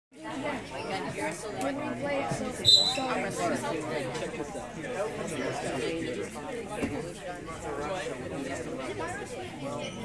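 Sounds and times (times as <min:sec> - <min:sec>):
chatter of people: 0:00.1 - 0:10.0
referee's whistle blast: 0:02.6 - 0:03.1.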